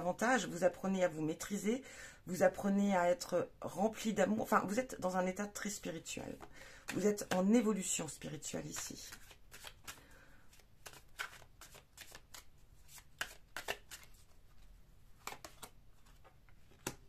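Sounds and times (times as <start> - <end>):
cards being shuffled: 6.0 - 7.6, 8.3 - 17.0.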